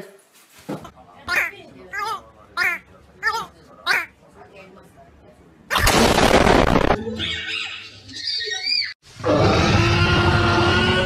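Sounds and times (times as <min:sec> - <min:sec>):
woman and toddler squealing: 0:07.2 - 0:09.0.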